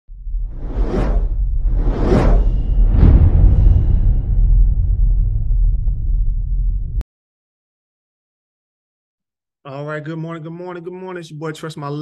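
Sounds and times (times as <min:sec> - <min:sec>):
deep low rumble: 0:00.1 - 0:07.0
whoosh: 0:00.1 - 0:07.0.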